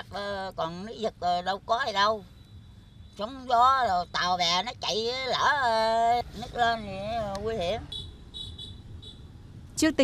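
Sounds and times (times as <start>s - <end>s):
faint low outdoor rumble: 0.0s - 10.0s.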